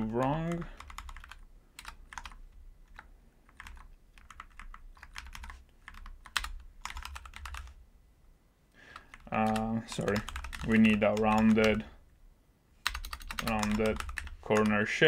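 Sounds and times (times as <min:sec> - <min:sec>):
computer keyboard typing: 0:00.0 - 0:07.8, 0:08.9 - 0:11.9, 0:12.8 - 0:14.8.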